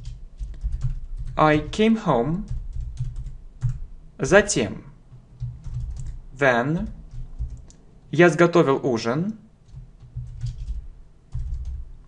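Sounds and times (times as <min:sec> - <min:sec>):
typing on computer keyboard: 0:00.0 - 0:01.8, 0:02.4 - 0:03.8, 0:05.1 - 0:06.2, 0:06.8 - 0:07.8, 0:09.6 - 0:11.9.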